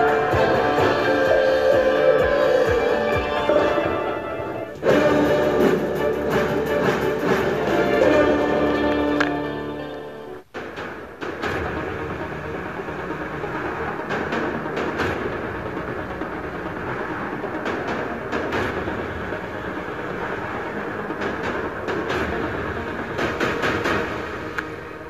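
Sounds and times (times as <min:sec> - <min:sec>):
instrumental theme music: 0:00.0 - 0:25.0.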